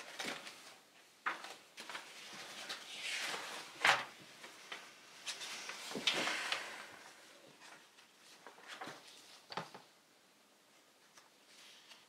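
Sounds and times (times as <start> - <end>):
notebook pages flipping: 0.0 - 6.8, 7.7 - 9.8, 11.1 - 12.0.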